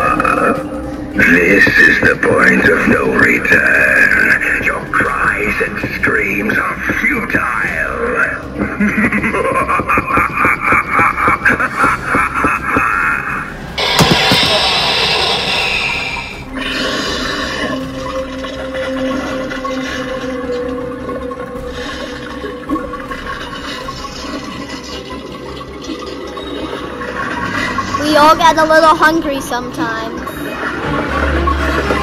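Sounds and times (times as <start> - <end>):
horror background music: 0.0 - 32.0
low drone: 8.0 - 28.5
person laughing: 8.6 - 13.3.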